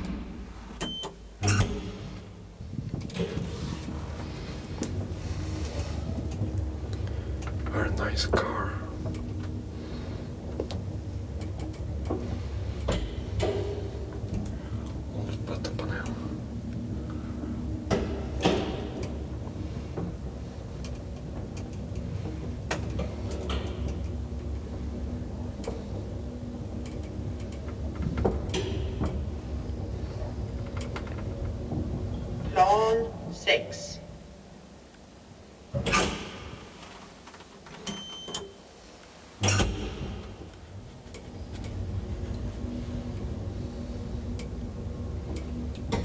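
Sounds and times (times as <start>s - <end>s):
elevator hum and rumble: 0.0s - 46.0s.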